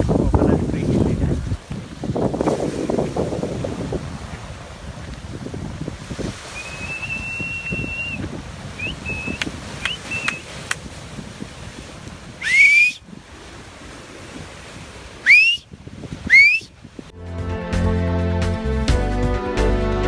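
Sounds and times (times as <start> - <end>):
surf: 0.0 - 20.0
wind: 0.0 - 20.0
man whistling: 6.5 - 8.2, 8.8 - 10.5, 12.4 - 13.1, 15.2 - 16.8
loud finger whistles: 6.5 - 10.5, 12.4 - 13.1, 15.2 - 16.8.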